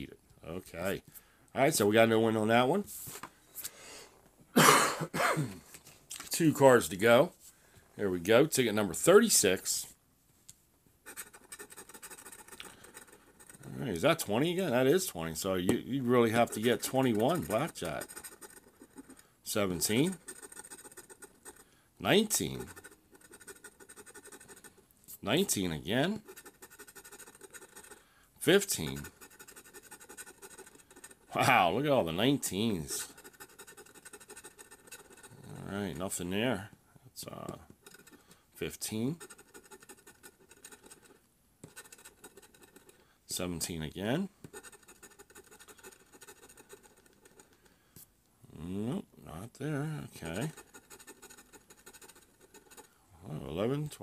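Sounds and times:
scraping scratch-off ticket: 11.1s - 36.2s, 37.3s - 43.0s, 44.5s - 47.6s, 49.8s - 52.9s.

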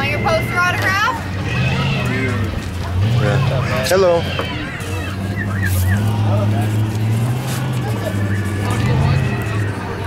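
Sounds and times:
engine running at low revs: 0.0s - 10.0s
faint voices: 0.0s - 10.0s.

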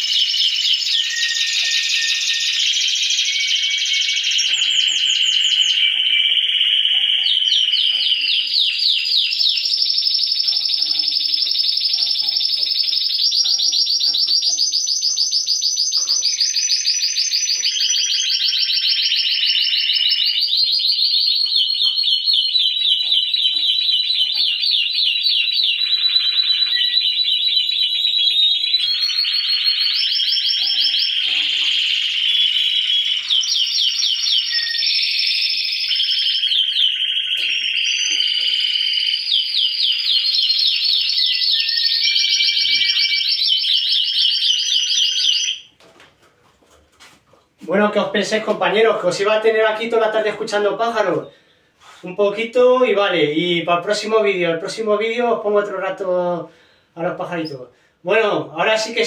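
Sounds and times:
canaries singing trills: 0.0s - 45.8s, 47.6s - 59.0s.

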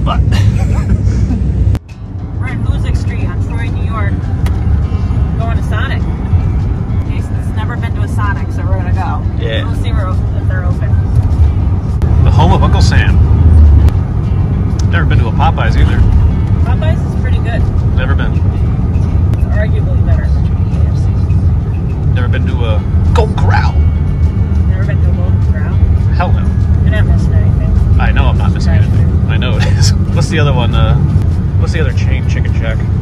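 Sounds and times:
engine and road rumble: 0.0s - 33.0s
music: 0.0s - 33.0s.

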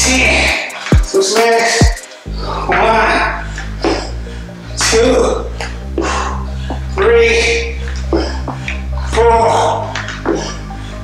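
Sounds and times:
background music with bass: 0.0s - 11.0s.

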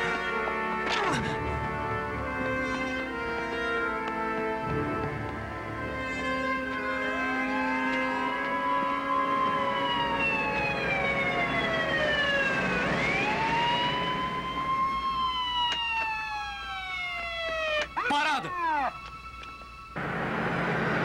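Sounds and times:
police siren wailing: 0.0s - 21.0s.

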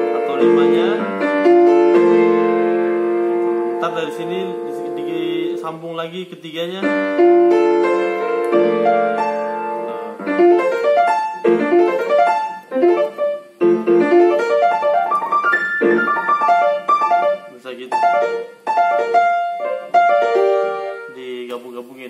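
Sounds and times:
piano playing chords and runs: 0.0s - 21.8s.

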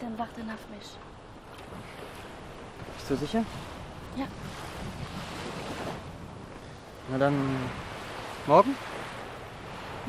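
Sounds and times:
surf washing onto beach: 1.2s - 10.0s.

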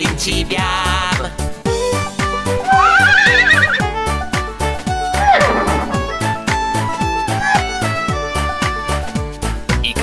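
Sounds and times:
upbeat children's song: 0.0s - 2.4s, 8.4s - 10.0s
cartoon horse whinny: 2.6s - 3.9s, 5.1s - 6.1s.

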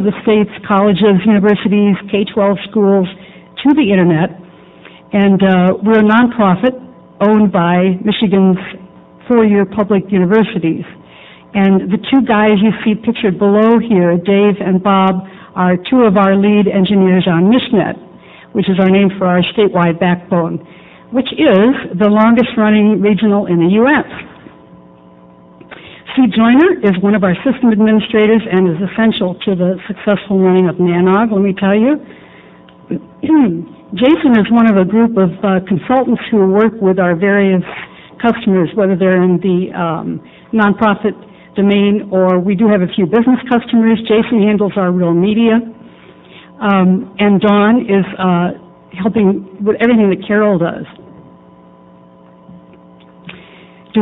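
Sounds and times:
electrical hum: 0.0s - 54.0s.

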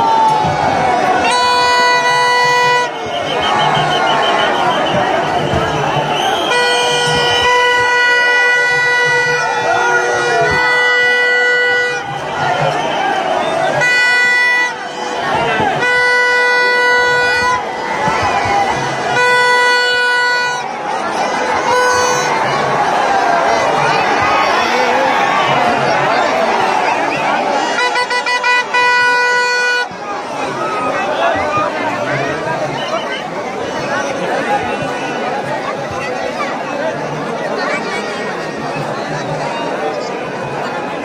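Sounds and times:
crowd hubbub: 0.0s - 41.0s
loud steady horn tone: 0.8s - 35.9s.

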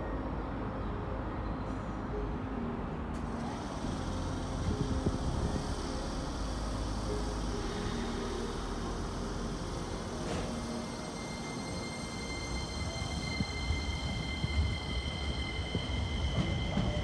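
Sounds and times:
electric train hum: 0.0s - 17.0s
faint steady tones: 0.0s - 17.0s.

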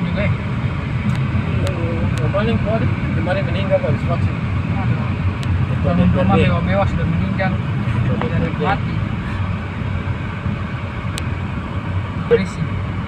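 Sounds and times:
people talking: 0.0s - 0.4s, 1.5s - 9.4s, 12.3s - 12.7s
car road and engine rumble: 0.0s - 13.0s.

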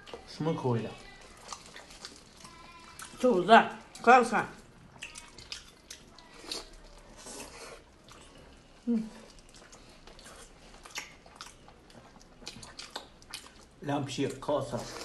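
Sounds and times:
wet chewing and lip-smacking: 1.0s - 15.0s.

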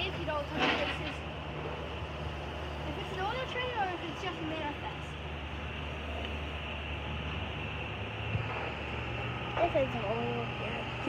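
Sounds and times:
distant freight train drone: 0.0s - 11.0s.

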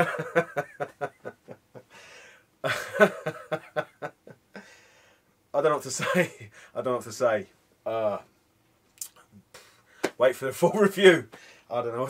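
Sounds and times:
man laughing: 0.0s - 1.9s, 2.6s - 4.7s.

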